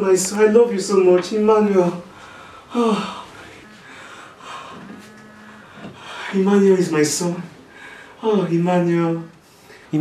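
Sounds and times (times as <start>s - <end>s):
breathy sob: 2.3s - 6.4s
man weeping: 2.7s - 6.4s
man moaning: 2.7s - 6.7s.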